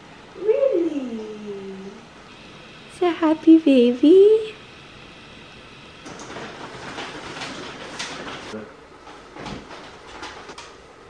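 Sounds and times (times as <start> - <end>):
window blinds clicks: 6.0 - 10.8
window blinds rustling rattle: 6.0 - 10.8.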